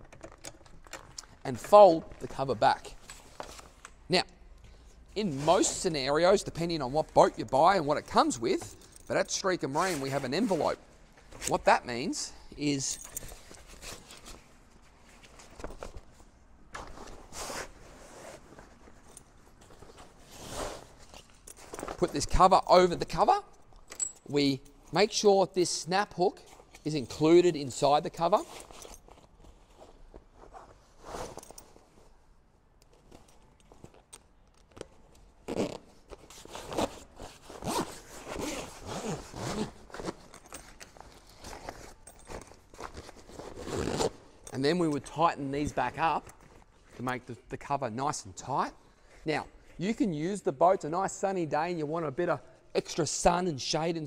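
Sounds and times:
canvas cover rustling: 0:34.8 - 0:44.3
zipper on canvas cover: 0:36.5 - 0:40.1, 0:43.3 - 0:44.2.

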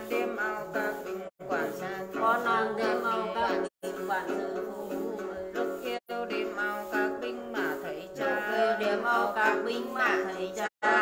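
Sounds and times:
plucked lute notes: 0:00.0 - 0:11.0
woman singing a chant: 0:00.0 - 0:11.0.

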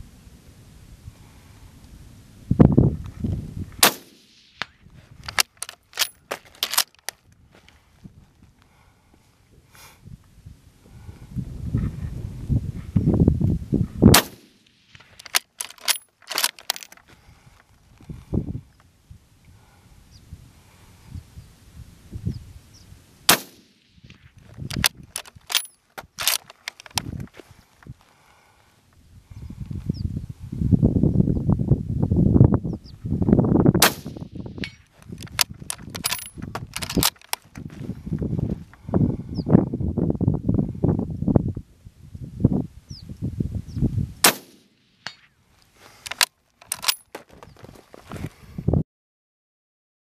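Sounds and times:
rifle shots: 0:03.8 - 0:04.7, 0:14.1 - 0:16.6, 0:23.3 - 0:24.2, 0:33.8 - 0:34.8, 0:44.2 - 0:45.2.

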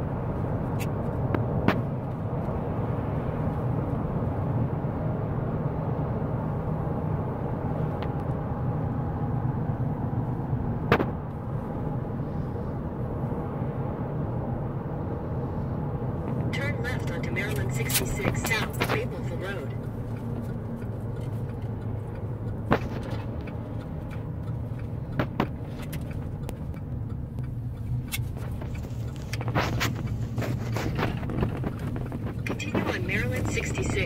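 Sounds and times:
car road and engine noise: 0:00.0 - 0:34.0.

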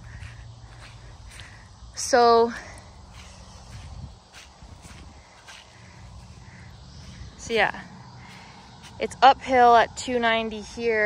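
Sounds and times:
footsteps on grass: 0:00.0 - 0:09.2
low outdoor rumble: 0:00.0 - 0:11.0.

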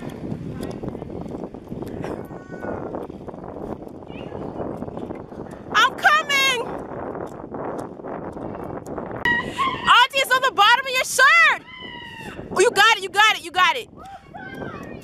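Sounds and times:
wind noise: 0:00.0 - 0:15.0.

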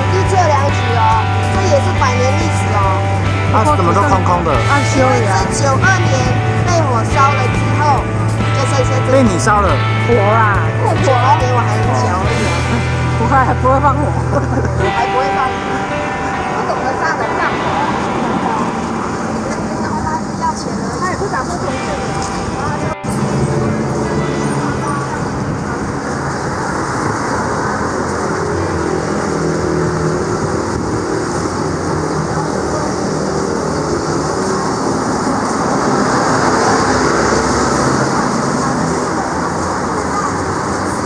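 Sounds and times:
cars passing: 0:00.0 - 0:41.0
voices: 0:00.0 - 0:41.0.

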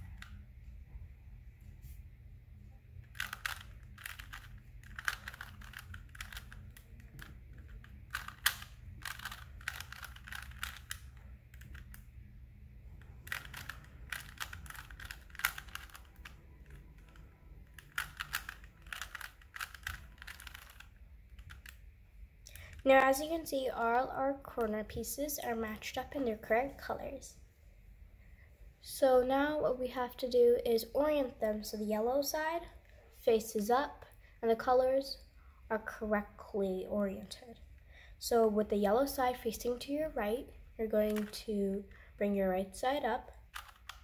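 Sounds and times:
puzzle cube layers clicking: 0:03.1 - 0:12.1, 0:12.9 - 0:21.8, 0:41.1 - 0:41.4, 0:43.5 - 0:44.0.

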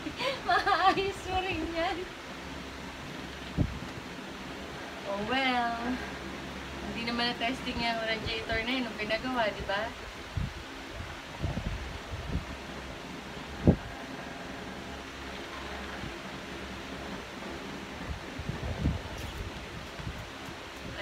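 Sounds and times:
low machine hum: 0:00.0 - 0:21.0.

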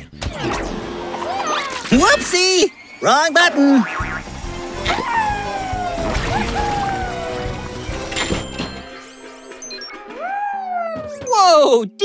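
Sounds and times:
cartoon background music: 0:03.8 - 0:12.0.

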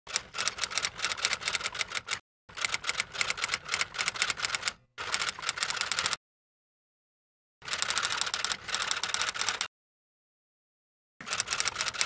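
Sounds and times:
rapid typewriter keystrokes: 0:11.2 - 0:12.0.

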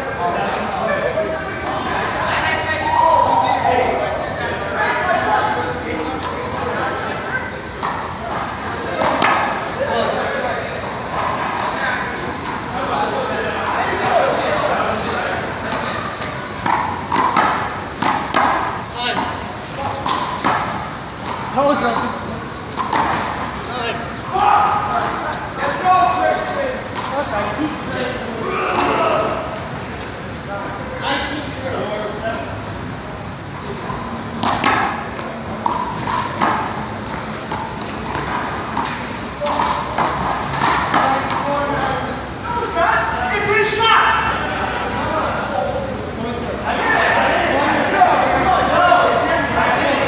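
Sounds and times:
voices chattering: 0:00.0 - 0:50.0
ball slapping wall and floor: 0:15.7 - 0:22.1, 0:34.3 - 0:41.6.

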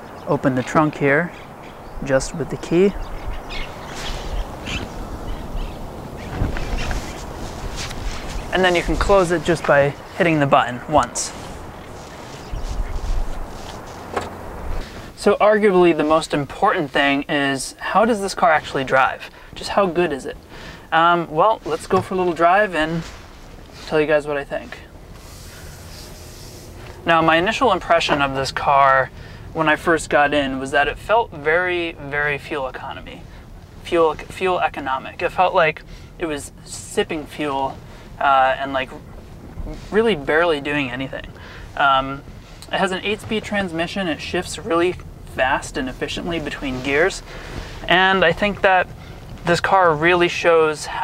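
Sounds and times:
car cabin road and engine noise: 0:00.0 - 0:51.0
outdoor rumble: 0:00.0 - 0:51.0
bird chirps: 0:01.3 - 0:07.4, 0:11.6 - 0:13.9.

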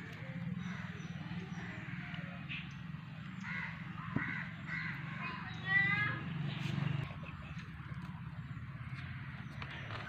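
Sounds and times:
bird cawing: 0:00.6 - 0:02.7, 0:03.3 - 0:05.7.

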